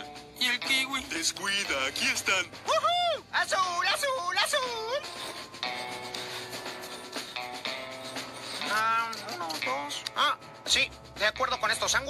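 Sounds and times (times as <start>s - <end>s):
chalk scraping on brick: 5.0s - 8.9s.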